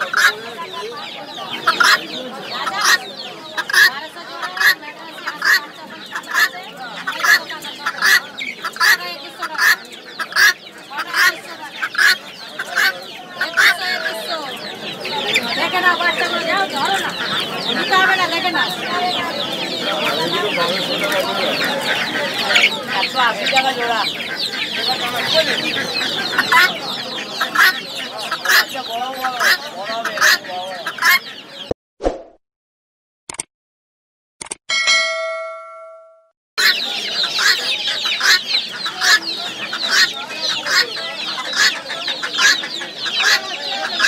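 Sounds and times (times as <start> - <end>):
chickens clucking: 0.0 - 31.8, 36.6 - 44.0.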